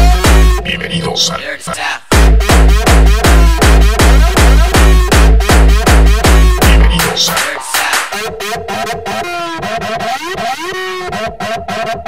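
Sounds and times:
dense low beat: 0.0 - 1.0, 2.1 - 10.4.

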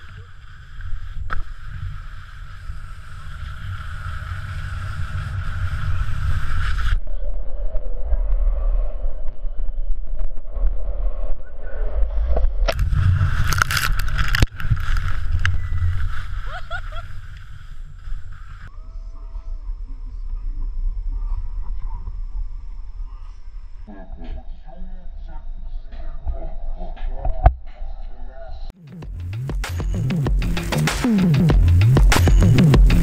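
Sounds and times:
skis hissing over snow: 0.0 - 7.0, 12.8 - 18.7.

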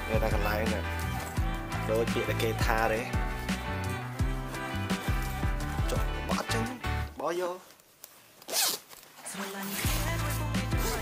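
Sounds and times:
background music: 0.0 - 7.4, 9.3 - 11.0
zipper pulled open: 8.4 - 10.1, 10.8 - 11.0.

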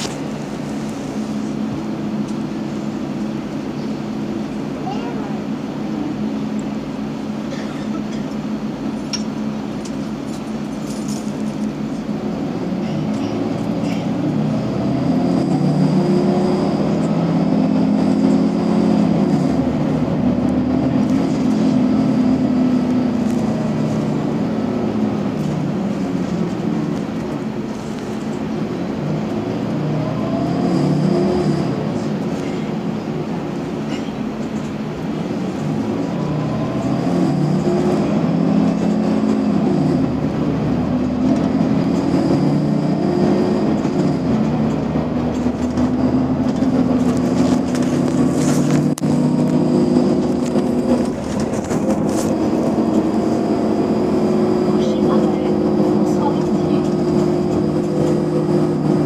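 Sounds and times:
bus engine accelerating: 0.0 - 59.0.

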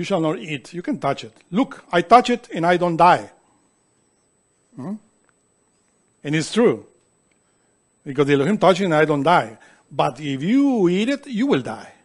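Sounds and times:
person saying mm-hmm: 4.8 - 5.1.

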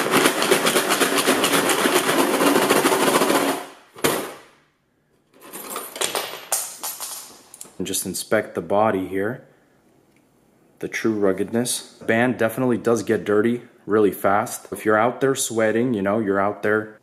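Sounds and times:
screws rattling in plastic jar: 0.0 - 4.4.

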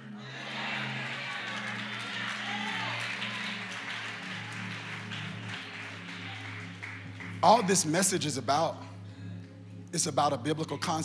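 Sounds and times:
faint congregation noise: 0.0 - 11.0.

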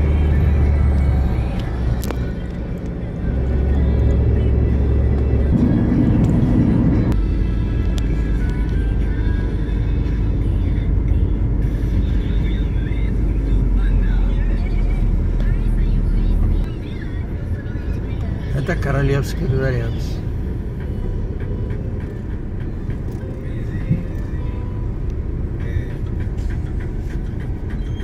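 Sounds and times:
car engine and road rumble: 0.0 - 28.0
music: 0.0 - 28.0.

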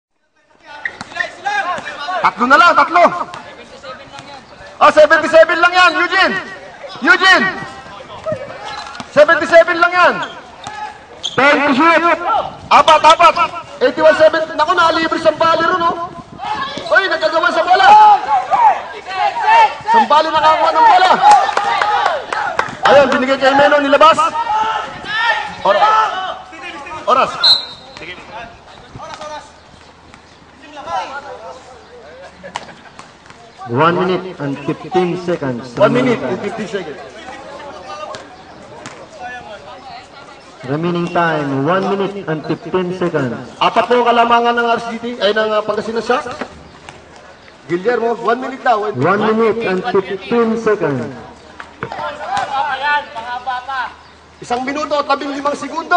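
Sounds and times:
man talking: 0.2 - 16.2, 16.8 - 21.4, 22.8 - 29.6, 33.6 - 38.3, 39.1 - 46.5, 47.6 - 55.9
referee's whistle blast: 27.4 - 28.0.

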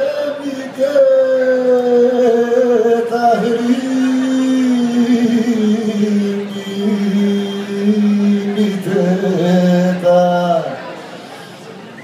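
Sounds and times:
man singing long note: 0.0 - 10.8.

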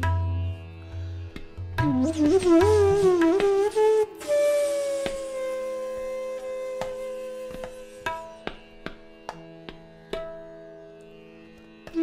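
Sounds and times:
tabla strokes: 0.0 - 10.8, 11.8 - 12.0
bamboo flute long note: 1.8 - 8.4.

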